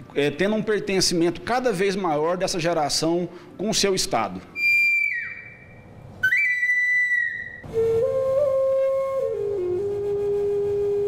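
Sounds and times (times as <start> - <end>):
high whistle note: 4.6 - 11.0
low bamboo flute note: 6.2 - 11.0.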